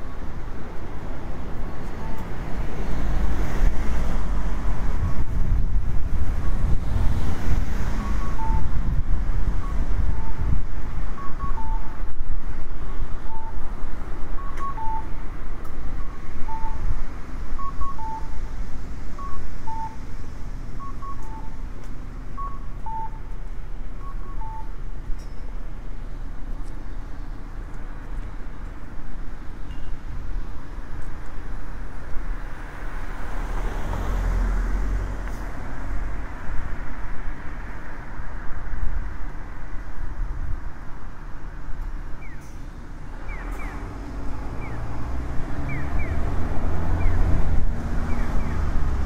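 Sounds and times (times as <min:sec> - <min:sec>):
traffic rumble: 0:00.0 - 0:49.0
wind: 0:00.0 - 0:49.0
car driving past: 0:32.5 - 0:37.0, 0:43.3 - 0:49.0.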